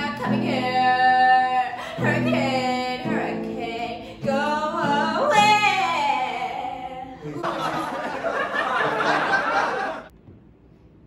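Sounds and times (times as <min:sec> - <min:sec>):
woman singing: 0:00.0 - 0:07.2
acoustic guitar: 0:00.0 - 0:07.6.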